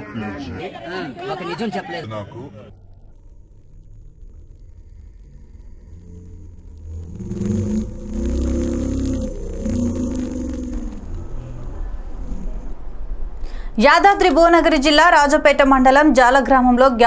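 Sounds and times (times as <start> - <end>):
rising and falling pitched sound: 2.7 - 12.4.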